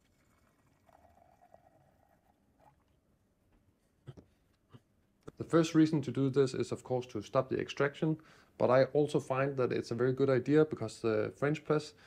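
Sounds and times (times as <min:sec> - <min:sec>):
faint pour of coffee into glass: 0:00.0 - 0:03.0.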